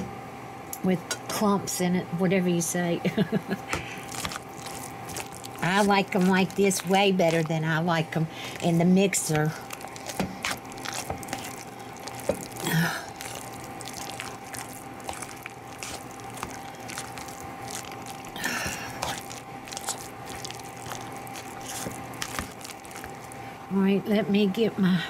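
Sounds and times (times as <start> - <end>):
potatoes squishing: 3.8 - 23.5.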